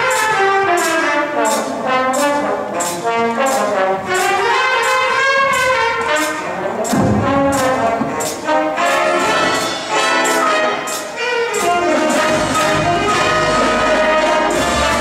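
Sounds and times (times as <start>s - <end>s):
cymbal beat: 0.0s - 15.0s
jazz big band playing: 0.0s - 15.0s
trumpets and trombones: 0.0s - 15.0s
low accent hit: 6.9s - 8.6s.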